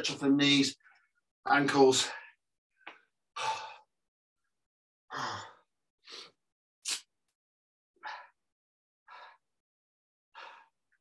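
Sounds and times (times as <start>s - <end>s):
man breathing heavily: 3.4s - 4.0s, 8.0s - 8.5s, 9.1s - 9.6s, 10.3s - 11.0s.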